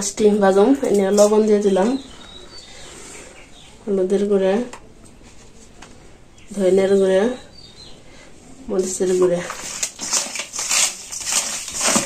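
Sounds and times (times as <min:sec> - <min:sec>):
hands mixing fish in a steel bowl: 0:08.8 - 0:12.0.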